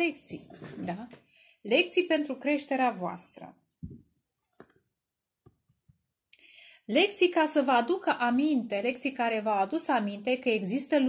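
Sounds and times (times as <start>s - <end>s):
woman speaking: 0.0s - 3.6s, 6.9s - 11.0s
soft breath in: 6.4s - 6.9s.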